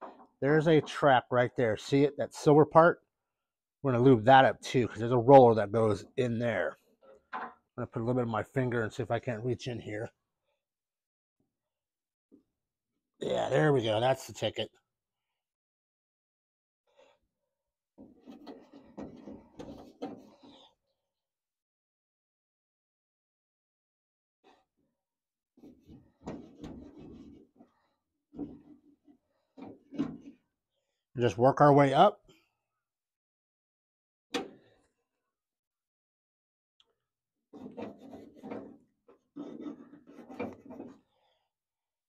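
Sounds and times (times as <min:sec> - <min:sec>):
hand rubbing and scraping metal: 0:18.0 - 0:20.8, 0:25.6 - 0:30.5, 0:37.5 - 0:41.2
fingers scraping on metal: 0:37.5 - 0:41.1.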